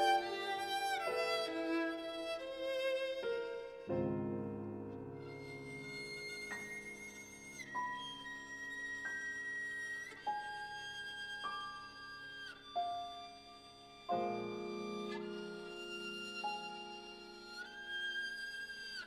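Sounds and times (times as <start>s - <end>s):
violin long high notes: 0.0s - 4.0s
soft piano chords: 0.0s - 19.0s.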